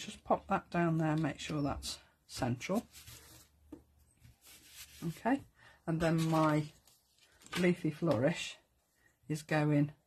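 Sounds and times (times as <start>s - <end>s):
faint rustle of card: 2.8s - 7.8s.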